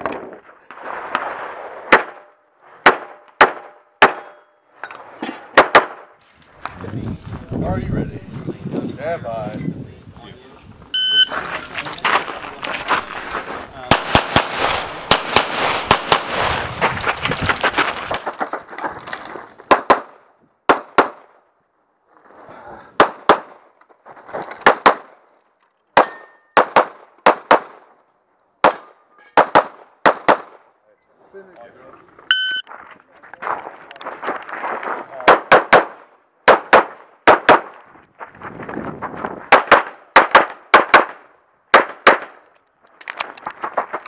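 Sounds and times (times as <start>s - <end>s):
pistol shots: 1.9s - 4.4s, 5.5s - 6.1s, 13.9s - 16.5s, 26.0s - 27.8s, 28.6s - 30.6s, 35.2s - 37.8s, 39.5s - 42.4s
shot timer beep: 11.0s - 11.3s, 32.3s - 32.6s.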